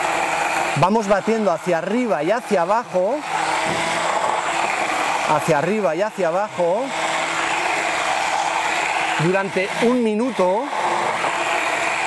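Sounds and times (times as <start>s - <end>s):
immersion blender whirring: 0.0s - 12.0s.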